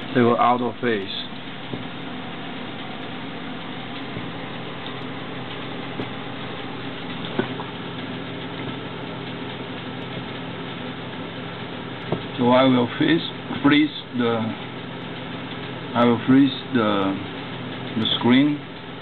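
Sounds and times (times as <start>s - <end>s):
cooling fan humming: 0.0s - 19.0s
low electrical buzz: 0.0s - 19.0s.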